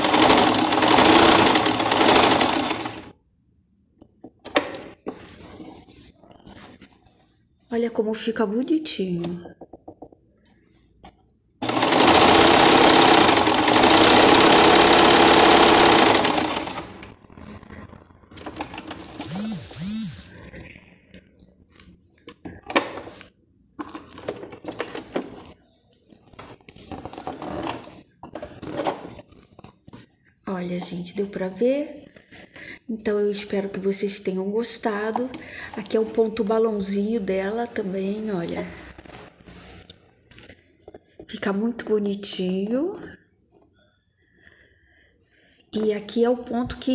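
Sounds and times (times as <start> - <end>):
sewing machine stitching: 0.0 - 3.1, 11.6 - 20.4.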